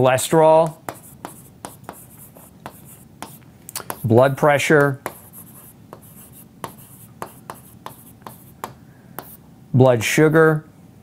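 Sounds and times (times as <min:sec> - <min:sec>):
pen scratching while writing: 0:00.6 - 0:04.2, 0:04.8 - 0:09.4.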